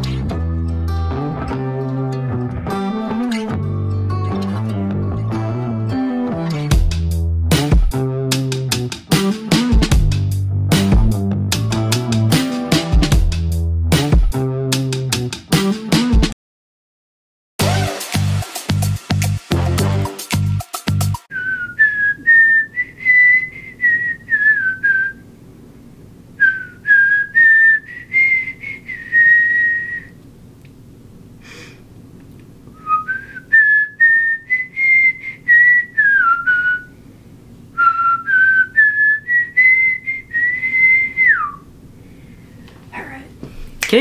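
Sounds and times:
person whistling a tune: 21.3s - 25.2s, 26.4s - 30.2s, 32.8s - 36.9s, 37.8s - 41.6s.

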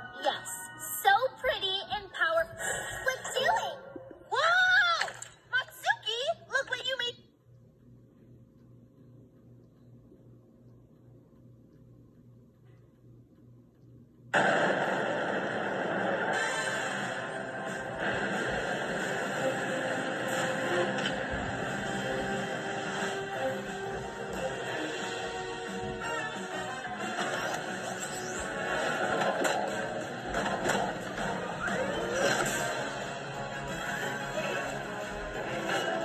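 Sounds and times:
background music: 0.0s - 4.6s, 14.4s - 36.0s
cartoon sound effects: 31.4s - 32.8s.

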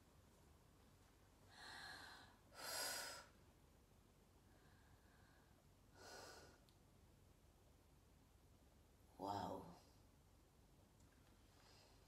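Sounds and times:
woman breathing deeply: 1.5s - 3.4s, 4.5s - 6.6s.

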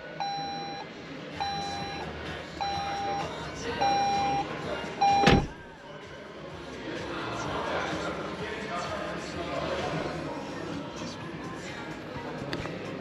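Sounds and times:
car warning chime: 0.0s - 0.8s, 1.4s - 5.6s
loud thump: 5.2s - 5.6s.

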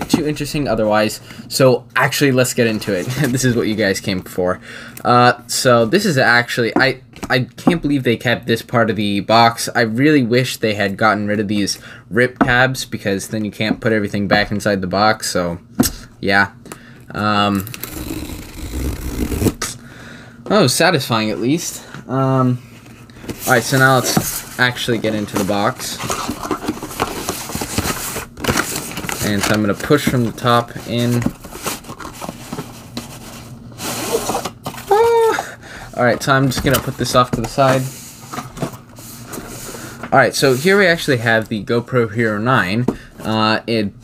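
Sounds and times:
cardboard tear strip ripping: 17.6s - 19.7s.

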